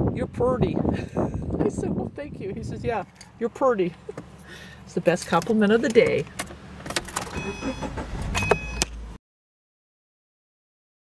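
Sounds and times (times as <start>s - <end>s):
short high beeps: 7.4s - 8.9s.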